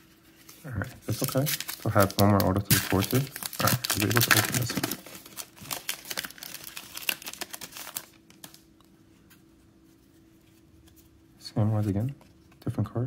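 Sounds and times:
foil wrapper crinkling: 0.9s - 8.7s.

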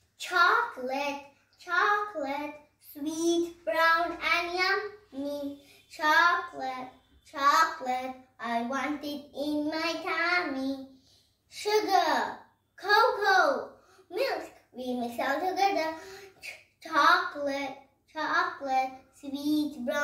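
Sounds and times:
girl singing unaccompanied: 1.6s - 10.9s.

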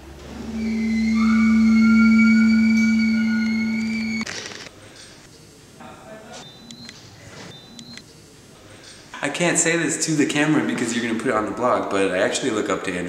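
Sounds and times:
low sustained ringing tone: 0.3s - 4.2s.

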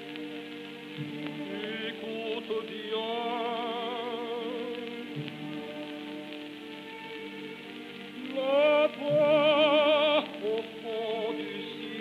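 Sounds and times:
orchestra playing: 0.0s - 12.0s.

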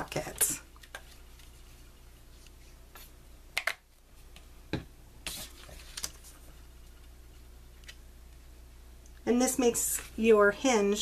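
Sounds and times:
faint low hum: 0.0s - 11.0s
paper rustle: 5.3s - 6.6s.

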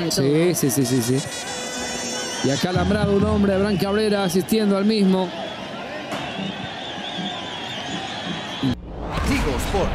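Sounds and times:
crowd hum: 0.0s - 9.9s.

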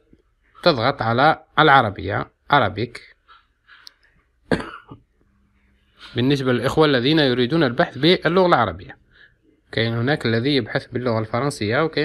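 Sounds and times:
faint breathing: 3.1s - 4.2s, 8.9s - 9.7s
person coughing: 4.5s - 5.0s.

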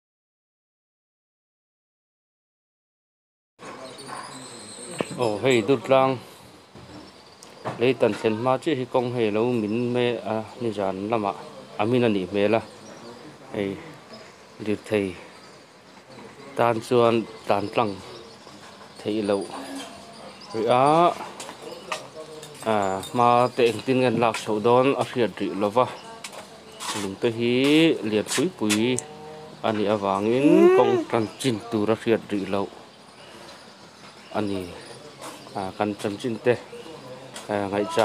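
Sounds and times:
insects chirring: 3.9s - 38.0s
person speaking: 30.2s - 31.3s
person exclaiming: 30.4s - 31.2s.

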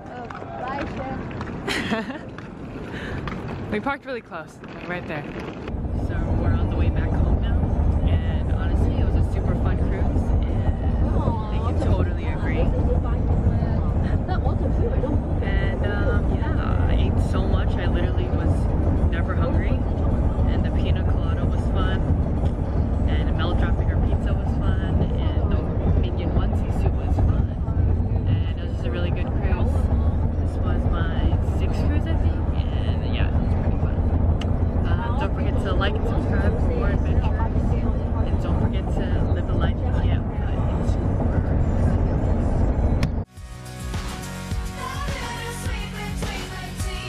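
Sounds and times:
car road and engine rumble: 0.0s - 43.3s, 44.2s - 47.0s
woman talking: 3.6s - 5.4s, 6.0s - 19.8s, 20.4s - 22.1s, 23.0s - 34.1s, 34.8s - 41.2s
pop music: 43.3s - 47.0s.

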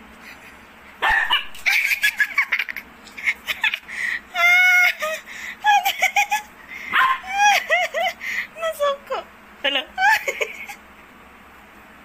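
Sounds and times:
dogs yipping and barking: 1.0s - 2.5s, 6.9s - 7.5s.

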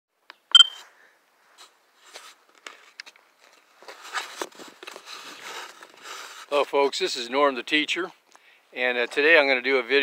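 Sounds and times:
phone camera start beep: 0.5s - 0.8s
handling rustle: 1.5s - 7.0s.

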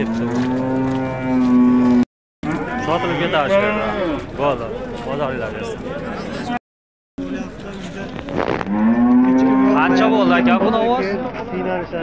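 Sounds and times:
bull mooing: 0.0s - 4.3s, 8.6s - 10.7s.

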